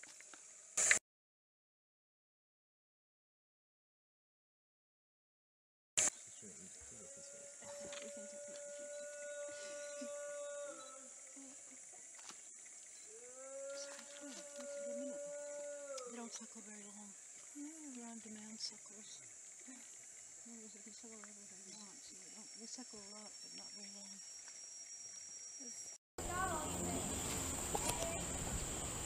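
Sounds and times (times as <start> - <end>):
infant orangutan whimpering: 7.0 - 11.8, 13.4 - 16.3.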